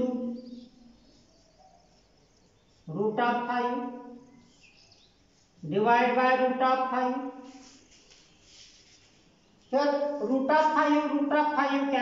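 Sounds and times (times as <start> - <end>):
faint high chirps: 0.3 - 2.9.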